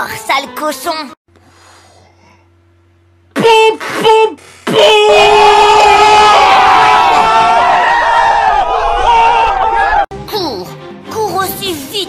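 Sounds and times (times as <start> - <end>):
person shouting: 3.4 - 6.4
long wavering scream: 4.8 - 10.0.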